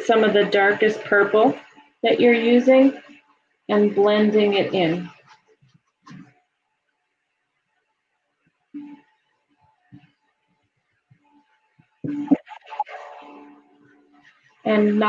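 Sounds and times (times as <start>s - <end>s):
person's voice: 3.7s - 5.1s, 14.7s - 15.0s.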